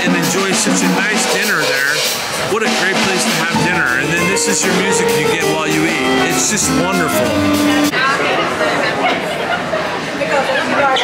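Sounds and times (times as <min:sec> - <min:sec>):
people talking: 0:00.0 - 0:11.0
live jazz band playing: 0:00.2 - 0:08.0.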